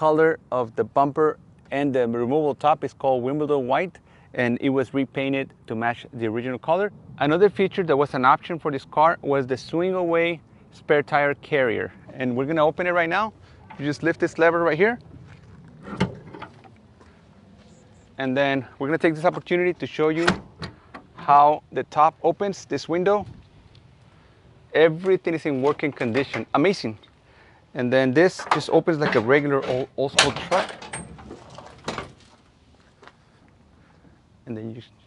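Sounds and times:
tailgate clunking open: 15.8 - 16.8, 20.2 - 21.2.

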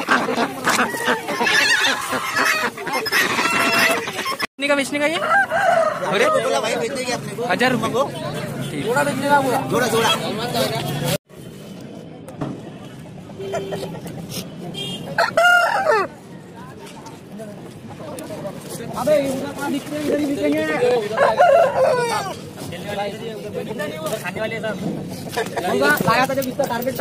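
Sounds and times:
ducks quacking: 0.0 - 4.5
chickens calling: 0.0 - 6.9, 20.5 - 22.6
rooster crowing: 5.2 - 6.8, 15.2 - 16.1, 21.1 - 22.3.

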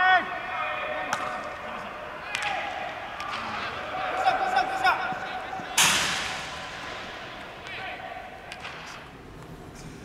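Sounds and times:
baseball bat crack: 1.1 - 1.6, 8.5 - 9.1.

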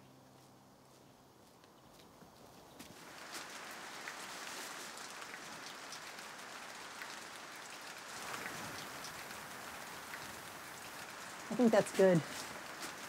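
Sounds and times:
steady rain falling: 2.8 - 13.0.

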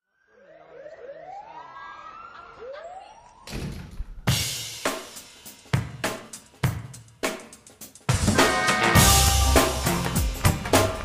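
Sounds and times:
drum kit hits: 4.2 - 11.0
band playing: 8.1 - 11.0.

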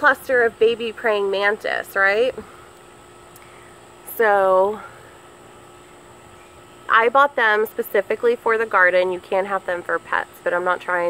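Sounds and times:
woman speaking: 0.0 - 2.4, 4.1 - 5.0, 6.9 - 11.0
background hum and hiss: 0.0 - 11.0
faint constant tones: 0.0 - 11.0.

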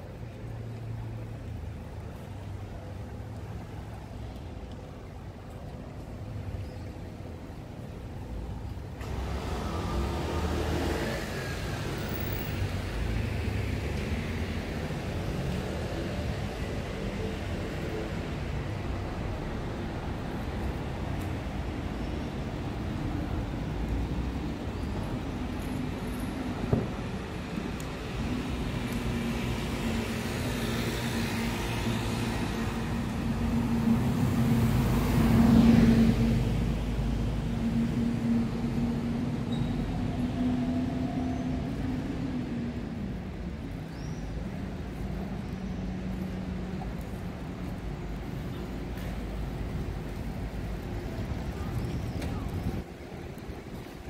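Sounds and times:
rumble of traffic: 0.0 - 54.0.

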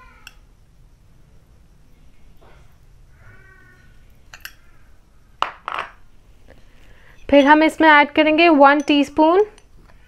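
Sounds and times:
metal spoon clinking on glass bowls: 4.3 - 4.6, 7.1 - 7.8, 8.6 - 9.7.

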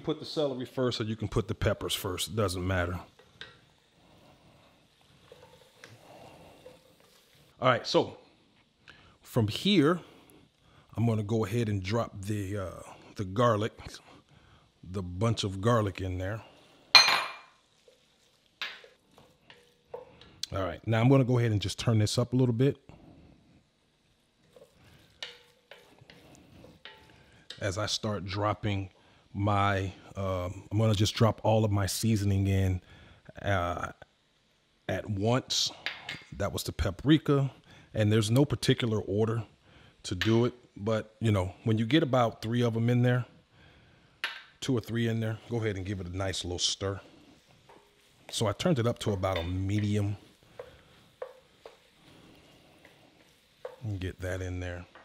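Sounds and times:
faint sizzle: 0.0 - 55.0
spatula stirring vegetables: 1.3 - 10.8, 11.8 - 17.0, 17.6 - 31.4, 43.4 - 55.0
spatula scraping pot: 2.5 - 7.6, 24.4 - 27.7, 45.6 - 54.2
spoon stirring thick mixture: 2.7 - 7.6, 24.4 - 27.8, 45.5 - 55.0
spoon knocking against pot: 44.2 - 44.5, 50.5 - 51.8.

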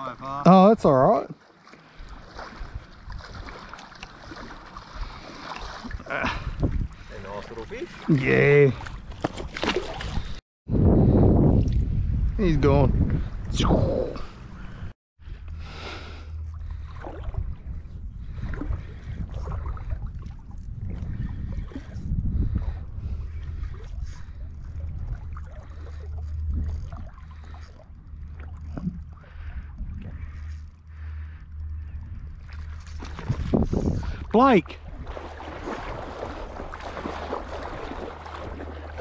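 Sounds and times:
water lapping around legs: 1.2 - 10.4, 16.4 - 39.0
wind rumbling on microphone: 1.9 - 3.7, 4.5 - 7.9, 8.6 - 39.0.

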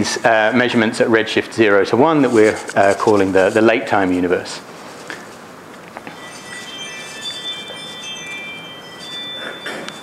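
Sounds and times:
high ringing chime tones: 6.1 - 10.0.

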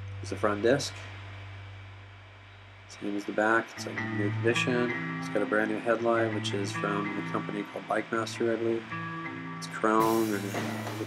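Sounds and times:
steady low hum: 0.0 - 11.0
faint hiss: 9.6 - 11.0.

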